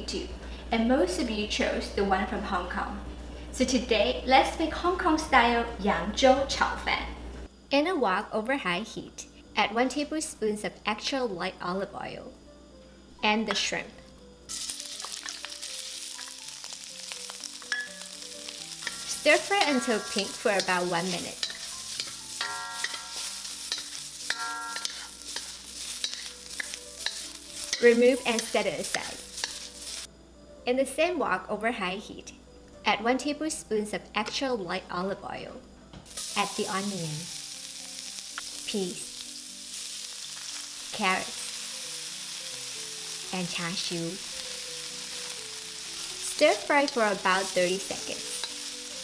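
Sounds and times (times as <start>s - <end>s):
shrimp sizzling in hot oil: 14.5s - 30.1s, 36.1s - 49.0s
wooden spatula stir-frying: 14.6s - 30.1s, 39.6s - 49.0s
wooden spatula scraping a wok: 18.8s - 30.1s.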